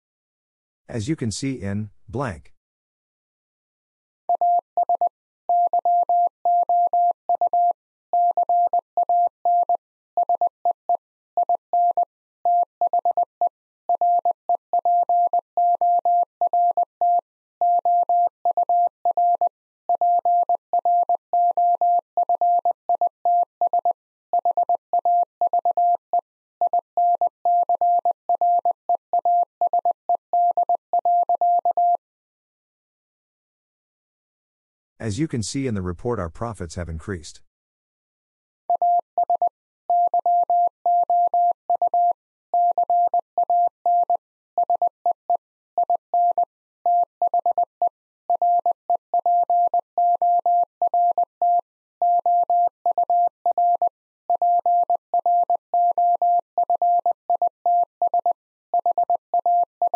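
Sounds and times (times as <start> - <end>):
morse code electronic tone: 38.8 - 44.9, 48.3 - 59.9.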